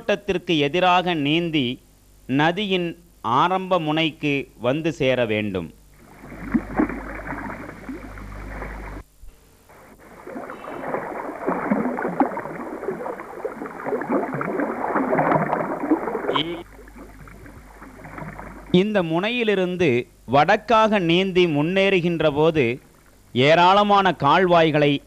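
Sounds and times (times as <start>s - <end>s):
river water rushing and splashing: 6.0s - 9.0s, 9.7s - 18.7s.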